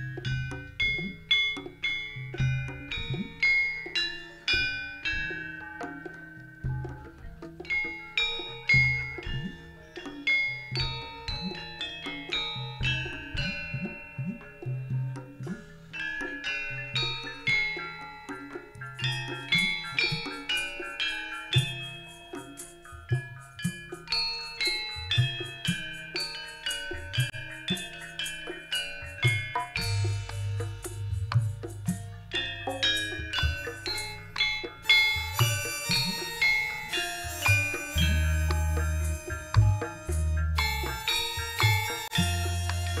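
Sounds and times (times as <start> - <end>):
gamelan playing: 0.0 - 43.0
low sustained tone: 29.8 - 43.0.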